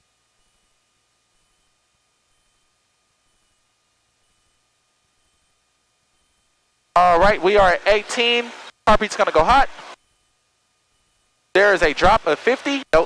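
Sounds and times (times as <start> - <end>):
thin steady tone: 0.0 - 13.0.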